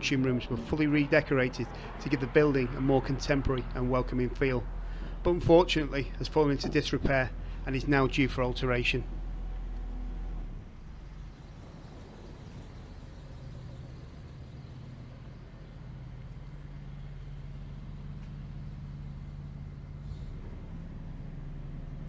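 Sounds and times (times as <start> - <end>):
engine hum: 0.0 - 22.0
low rumble of motor traffic: 0.0 - 22.0.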